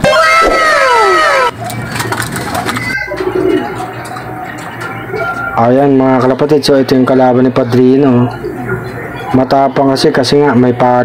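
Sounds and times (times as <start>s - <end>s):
pigeon cooing: 0.0s - 5.6s.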